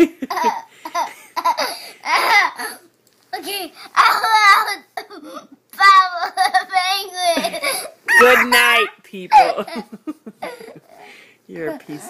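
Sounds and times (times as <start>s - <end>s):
young boy laughing: 0.0s - 5.4s, 6.0s - 11.0s.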